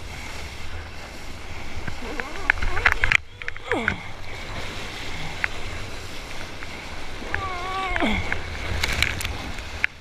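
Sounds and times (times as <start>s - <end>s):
water washing around surfboard: 0.0s - 10.0s.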